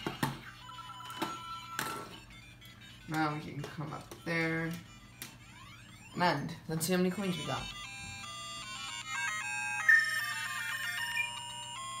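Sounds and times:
toy speaker beeping tune: 0:00.0 - 0:12.0.

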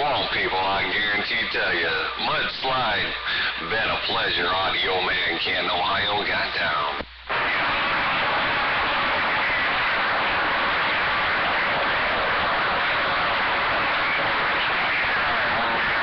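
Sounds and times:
radio static: 0:00.0 - 0:16.0.

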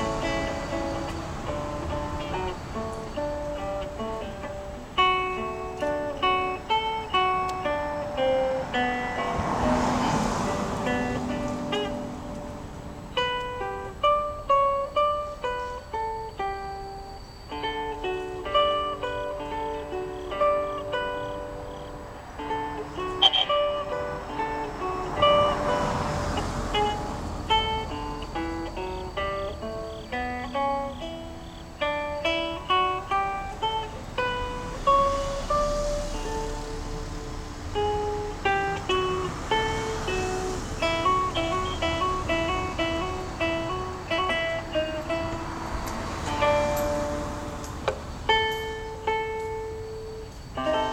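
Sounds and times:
fingerpicked acoustic guitar: 0:00.0 - 0:50.9.

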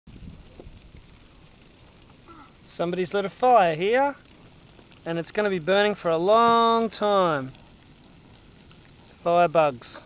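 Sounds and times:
wind rumble on microphone: 0:00.1 - 0:01.7
dry grass fire crackling: 0:00.1 - 0:10.0.

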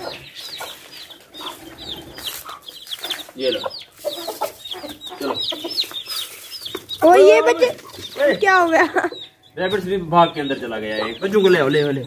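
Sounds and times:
chicks peeping: 0:00.0 - 0:12.0
hen clucking: 0:00.0 - 0:12.0.

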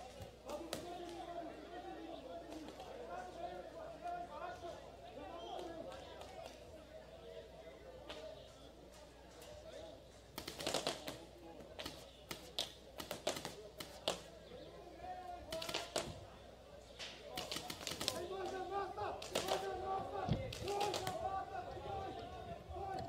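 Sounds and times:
paintball markers popping: 0:11.8 - 0:14.3, 0:19.2 - 0:21.2
players calling out: 0:17.3 - 0:23.0.

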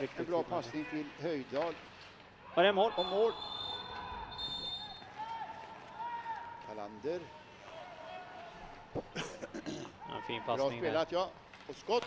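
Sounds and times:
faint arena background noise: 0:00.0 - 0:12.0.

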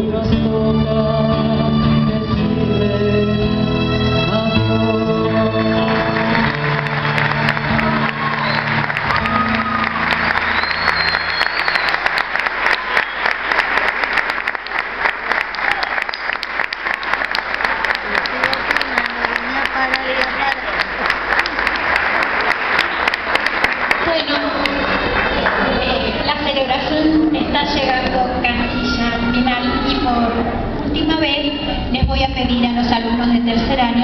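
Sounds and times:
audience applauding: 0:05.4 - 0:26.4.

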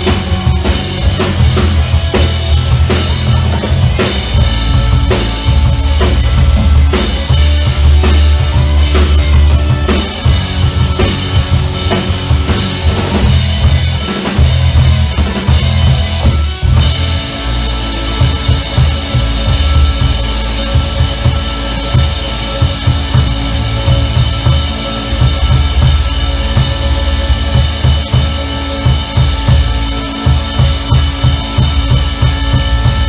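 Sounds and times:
bass guitar: 0:00.0 - 0:33.0
drum kit: 0:00.0 - 0:33.0
electric guitars: 0:00.0 - 0:33.0.

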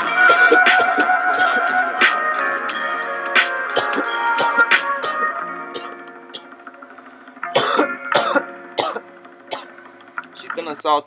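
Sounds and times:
hip-hop beat: 0:00.0 - 0:11.0
person coughing: 0:00.2 - 0:01.1, 0:03.8 - 0:06.5, 0:07.5 - 0:09.7.

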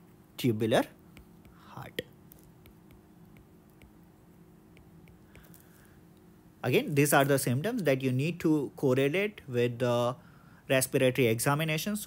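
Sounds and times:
stylus ticking on tablet screen: 0:01.0 - 0:05.6.

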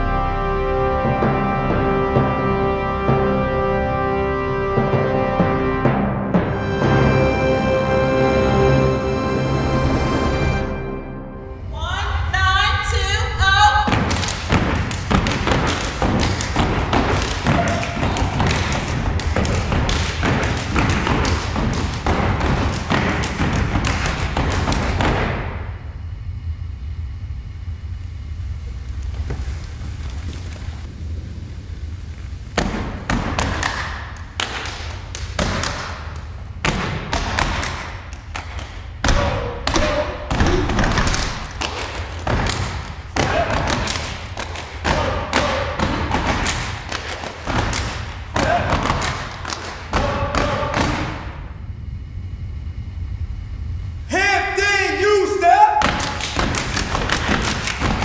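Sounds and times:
hand claps and body slaps: 0:13.9 - 0:25.4, 0:32.6 - 0:51.2, 0:55.8 - 0:58.0
feet stamping on wooden stage: 0:13.9 - 0:25.5.

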